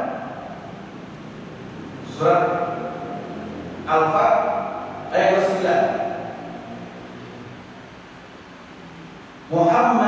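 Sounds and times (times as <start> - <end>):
low hum and hiss: 0.0 - 10.0
man talking: 2.0 - 3.1, 3.9 - 6.4, 9.5 - 10.0.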